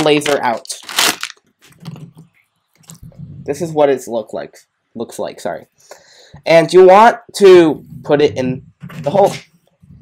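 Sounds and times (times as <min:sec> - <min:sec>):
plastic bag crinkling: 0:00.0 - 0:02.0.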